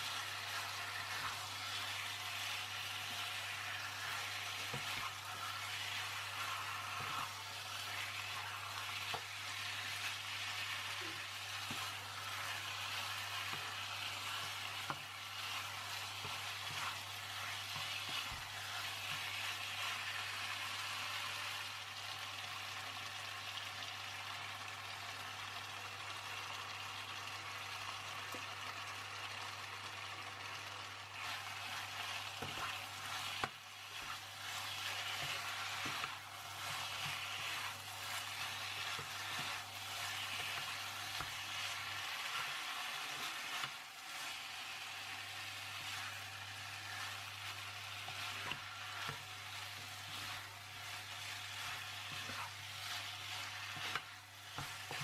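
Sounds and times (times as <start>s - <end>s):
spatula scraping and tapping pan: 0.0s - 20.8s, 31.2s - 44.4s, 45.0s - 55.0s
chicken sizzling in a pan: 0.0s - 55.0s.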